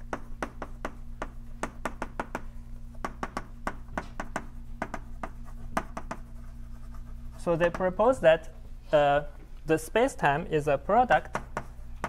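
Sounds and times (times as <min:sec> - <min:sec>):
chalk tapping and scraping on blackboard: 0:00.0 - 0:08.0, 0:11.1 - 0:12.0.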